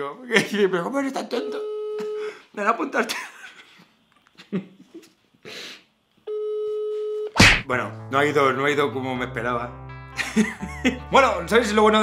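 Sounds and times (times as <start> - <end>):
breathy puff: 5.4 - 5.9.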